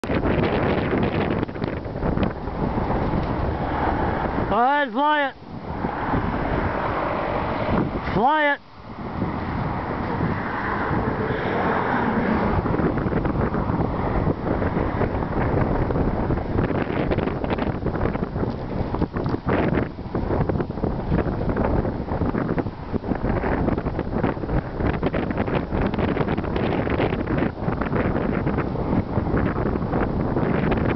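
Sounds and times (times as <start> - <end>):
wind buffeting microphone: 0.0 - 30.9.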